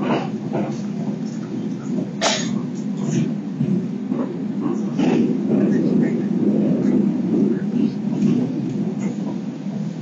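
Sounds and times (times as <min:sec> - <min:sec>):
train wheels rumbling on rail: 0:00.0 - 0:10.0.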